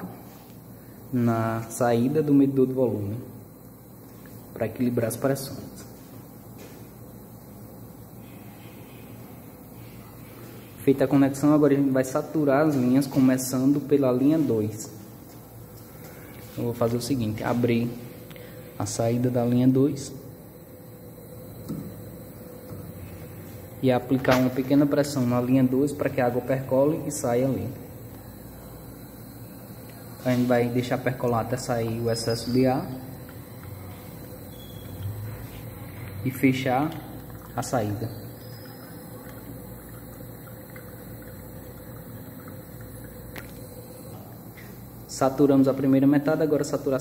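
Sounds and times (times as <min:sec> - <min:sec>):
low background hum: 0:00.0 - 0:47.0.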